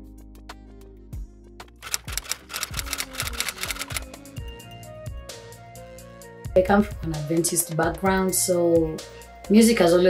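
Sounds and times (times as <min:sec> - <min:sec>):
background music with bass notes: 0:00.0 - 0:10.0
typewriter key clicks: 0:01.8 - 0:04.2.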